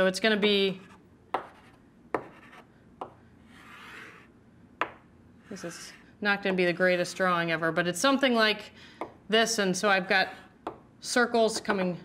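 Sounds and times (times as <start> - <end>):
chalk tapping on blackboard: 1.3 - 4.2.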